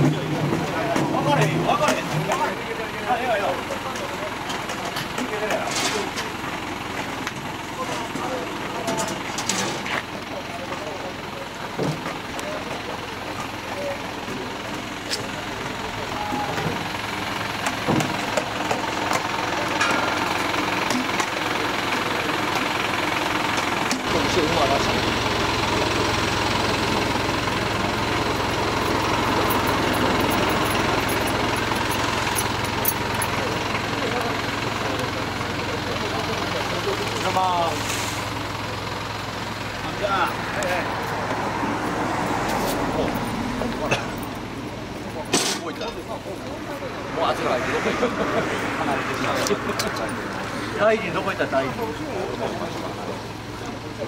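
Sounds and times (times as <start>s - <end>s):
crowd talking: 0.0s - 54.0s
truck engine running: 0.0s - 54.0s.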